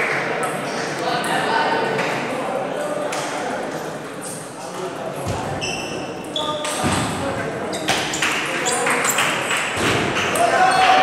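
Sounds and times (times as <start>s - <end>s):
spectator chatter: 0.0s - 11.0s.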